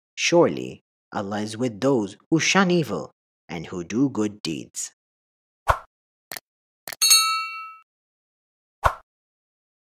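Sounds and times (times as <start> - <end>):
notification bell ding: 7.0 - 7.8.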